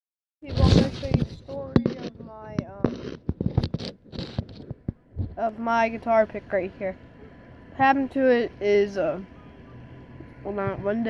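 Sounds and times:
boy talking: 0:00.4 - 0:03.0, 0:05.3 - 0:07.0, 0:07.8 - 0:09.2, 0:10.4 - 0:11.0
phone handling clicks and knocks: 0:01.1 - 0:05.4.

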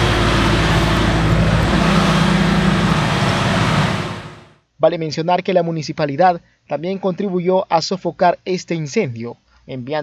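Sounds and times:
engine running: 0:00.0 - 0:04.6.

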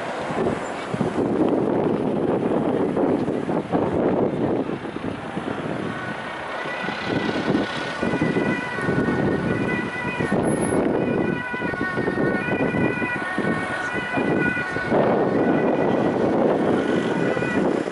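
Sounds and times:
emergency vehicle siren: 0:00.0 - 0:17.9
engines and traffic noise: 0:00.0 - 0:17.9.

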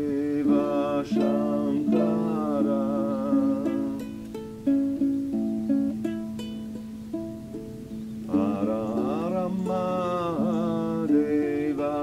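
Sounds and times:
person singing wordless melody: 0:00.0 - 0:07.0, 0:07.7 - 0:12.0
plucked string instrument: 0:00.0 - 0:12.0.

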